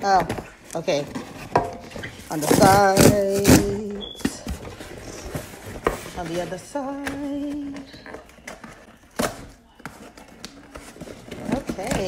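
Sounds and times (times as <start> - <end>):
cardboard box handling noise: 0.1 - 12.0.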